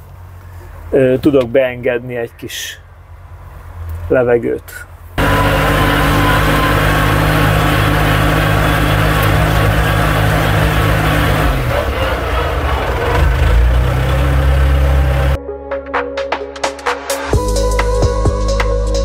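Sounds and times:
loader engine running: 5.2 - 15.4.

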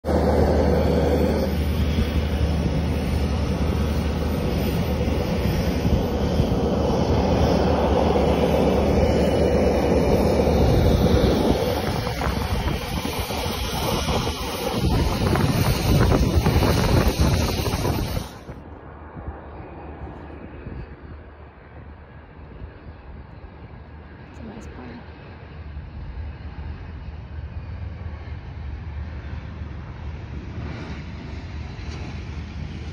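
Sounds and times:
wind on microphone: 0.0 - 24.9
airplane engine roar: 0.0 - 32.9.

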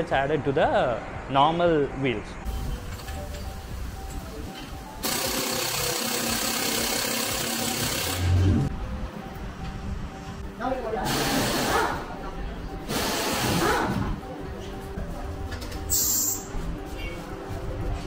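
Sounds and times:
background music: 2.4 - 18.0
pneumatic impact wrench: 5.0 - 8.5, 11.1 - 12.0, 12.9 - 14.0.

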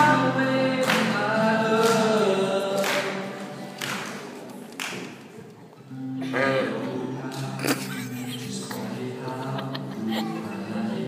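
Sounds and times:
man singing: 0.0 - 3.8, 6.2 - 11.0
acoustic guitar strumming: 0.0 - 3.9, 5.9 - 11.0.

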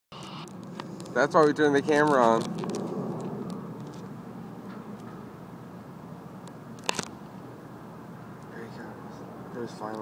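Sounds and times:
low hum inside vehicle: 0.1 - 6.6.

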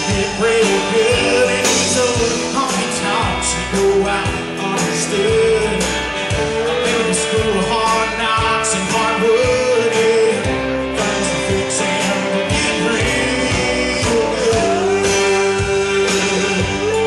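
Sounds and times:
country band playing: 0.0 - 17.0.

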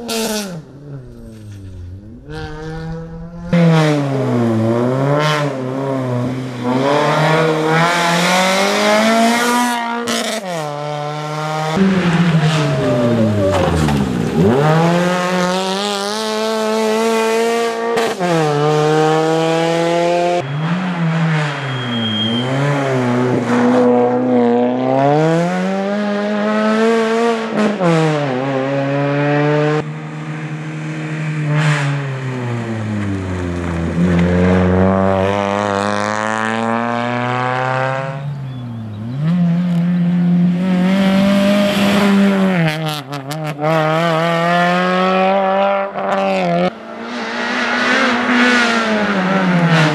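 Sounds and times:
rally car engine revving: 0.0 - 49.9.

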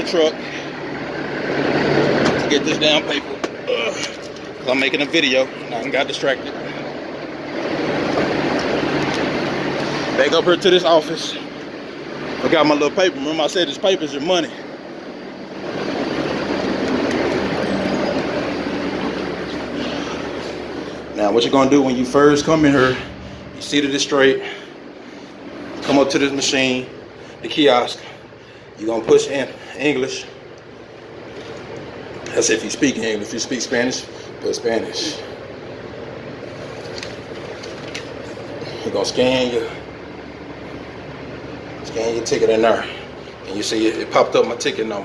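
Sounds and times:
machinery hum and hiss: 0.0 - 45.0
heavy machinery rumbling: 14.5 - 31.6.

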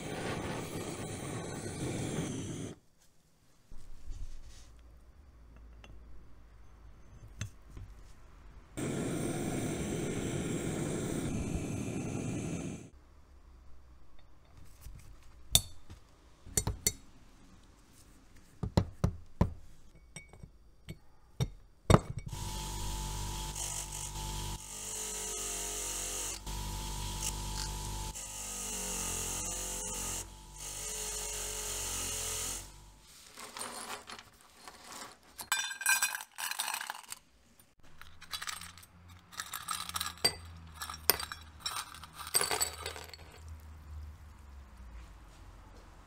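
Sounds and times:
small metal parts clinking: 33.4 - 43.5.

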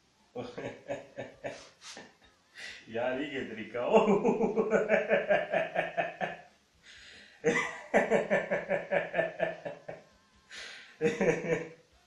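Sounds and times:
man laughing: 0.4 - 2.2, 3.8 - 6.4, 7.4 - 10.0, 11.0 - 11.6
breathy hiss: 1.4 - 3.0, 6.8 - 7.6, 10.4 - 11.1.

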